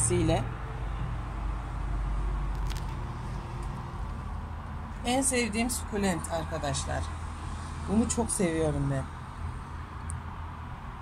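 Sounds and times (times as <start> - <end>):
urban background rumble: 0.0 - 11.0.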